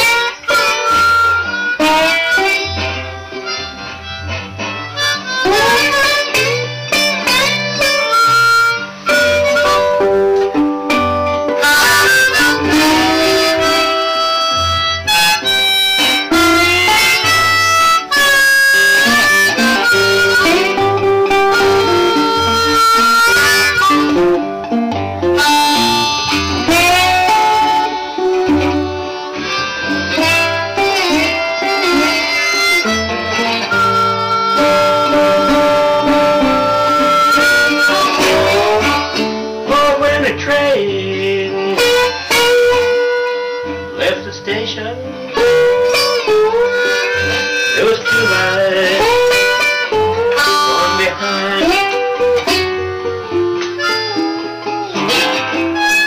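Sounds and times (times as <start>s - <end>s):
blues harmonica wailing: 0.0s - 56.0s
resonator guitar: 0.0s - 56.0s
washtub bass line: 0.0s - 56.0s.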